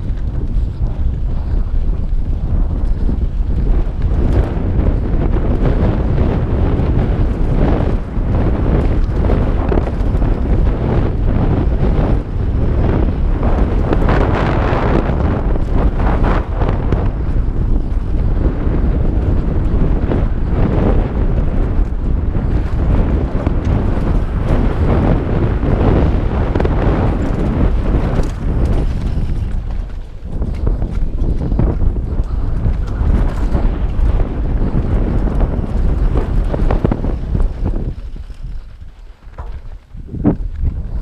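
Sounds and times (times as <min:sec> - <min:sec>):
bike rattling over bumps: 0:00.0 - 0:41.0
wind buffeting microphone: 0:00.0 - 0:41.0
tyres crunching over dirt: 0:21.6 - 0:41.0.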